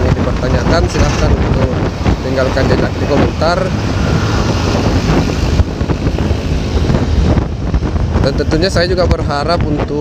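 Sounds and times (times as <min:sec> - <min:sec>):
low vehicle rumble: 0:00.0 - 0:10.0
wind noise on microphone: 0:00.0 - 0:10.0.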